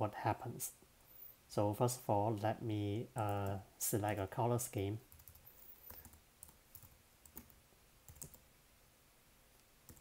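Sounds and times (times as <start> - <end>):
faint keyboard keystrokes: 5.1 - 8.4.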